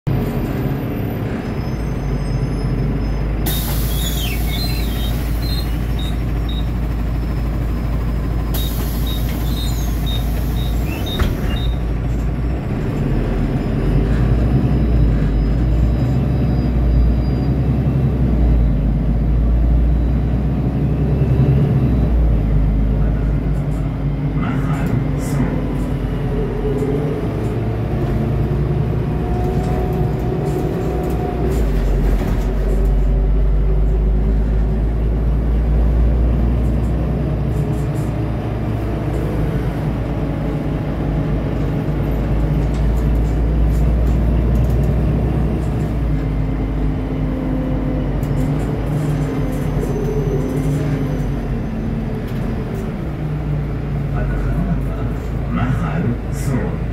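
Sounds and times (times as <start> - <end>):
bus interior drone: 0.0 - 56.9.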